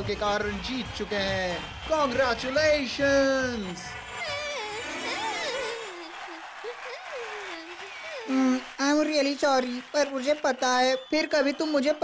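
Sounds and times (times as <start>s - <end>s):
girl crying: 4.2s - 8.7s.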